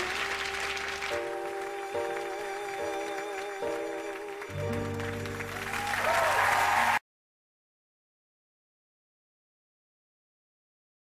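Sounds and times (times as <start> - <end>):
audience applause: 0.0 - 7.0.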